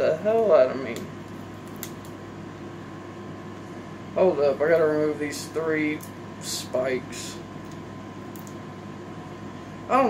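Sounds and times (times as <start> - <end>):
mechanical room hum: 0.0 - 10.0.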